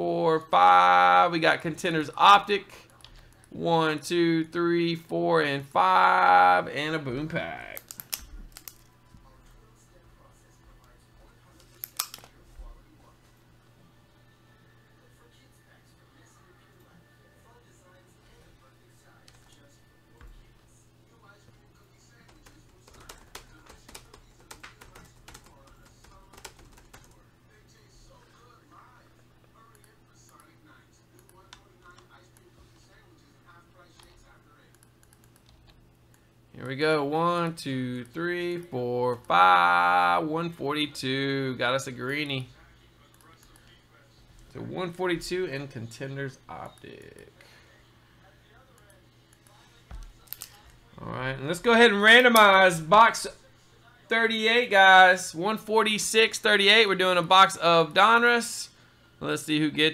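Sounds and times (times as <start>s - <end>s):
faint steady hum: 0.0s - 59.9s
computer keyboard keystrokes: 22.3s - 27.2s.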